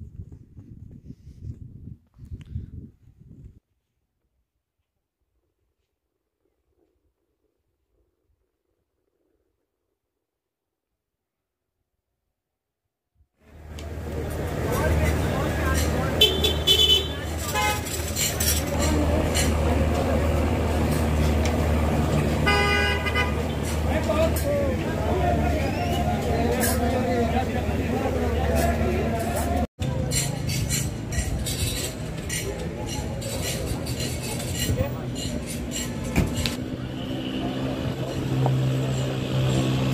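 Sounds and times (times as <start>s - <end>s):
crowd voices: 13.5s - 39.9s
people talking: 13.7s - 39.9s
vehicle horns tooting: 15.4s - 18.4s, 22.3s - 24.5s, 36.7s - 39.7s
low engine hum: 18.0s - 31.1s.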